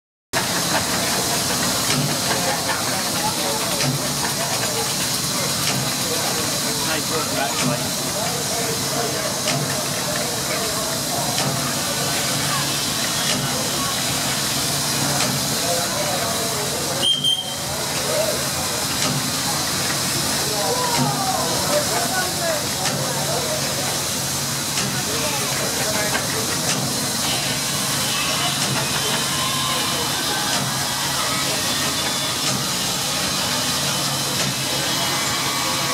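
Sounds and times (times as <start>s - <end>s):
steam hissing: 0.4s - 35.9s.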